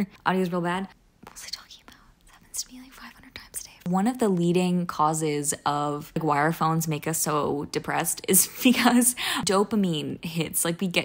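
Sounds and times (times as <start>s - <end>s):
woman whispering: 1.2s - 4.0s.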